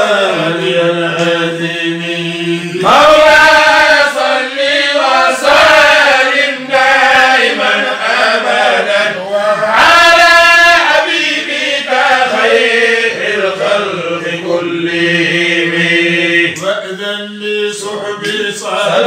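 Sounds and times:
voices chanting: 0.0s - 19.0s.

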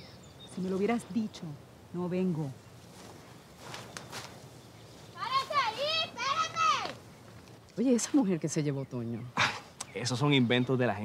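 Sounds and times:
high-pitched voice calling out: 5.2s - 6.9s.

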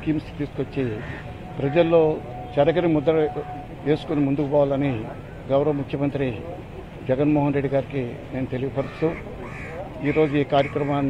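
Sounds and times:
man speaking: 0.0s - 9.2s
bird cawing: 0.9s - 1.9s, 8.7s - 11.0s.

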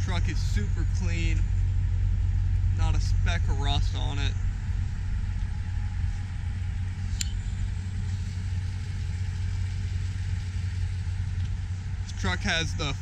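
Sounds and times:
truck engine idling: 0.0s - 13.0s.

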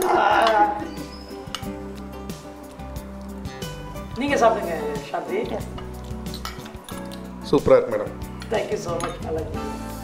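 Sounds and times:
background music: 0.0s - 10.0s
cutlery clinking on a plate: 6.2s - 7.3s, 8.4s - 9.3s.

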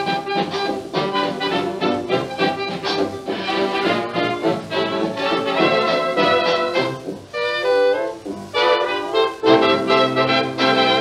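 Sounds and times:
dance band playing: 0.0s - 11.0s
record surface noise: 0.0s - 11.0s.

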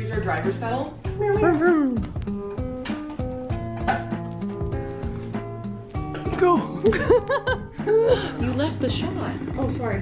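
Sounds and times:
light melody: 0.0s - 10.0s.

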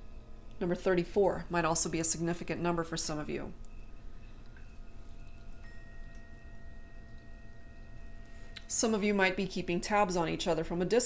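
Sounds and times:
soft chime-like tones: 1.9s - 10.9s.

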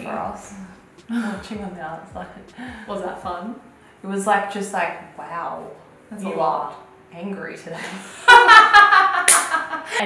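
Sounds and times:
low thumps: 0.0s - 3.6s
woman laughing loudly: 8.2s - 10.0s.

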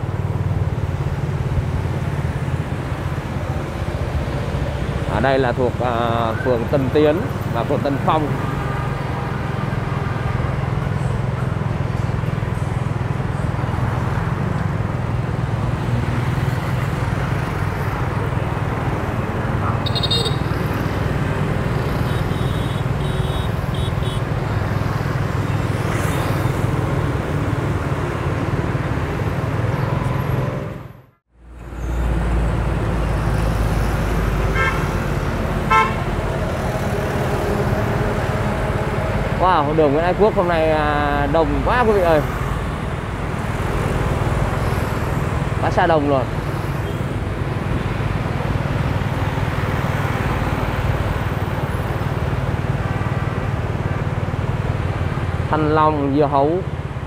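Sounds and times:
motorbike engine hum: 0.0s - 30.8s
street traffic: 0.0s - 57.0s
vehicle horn toots: 19.8s - 20.5s, 22.0s - 24.2s, 34.5s - 34.9s, 35.7s - 36.1s.

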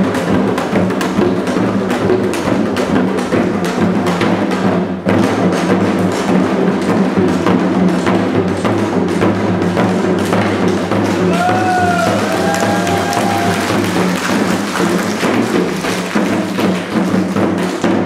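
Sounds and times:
hourglass drums struck with sticks: 0.0s - 18.0s
accompanying music: 5.5s - 18.0s.

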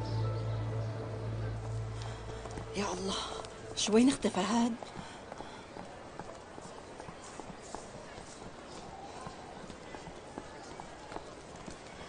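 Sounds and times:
steady street hiss: 0.0s - 12.0s
footsteps on hard pavement: 1.6s - 12.0s.

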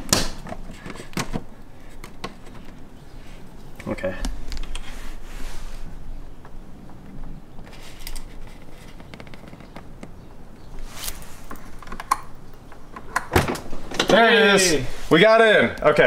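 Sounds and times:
cable clicks and rustling: 0.0s - 5.0s, 6.4s - 14.4s.

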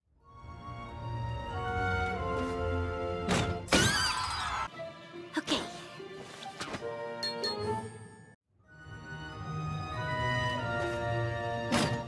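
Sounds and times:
background music: 0.1s - 12.0s.

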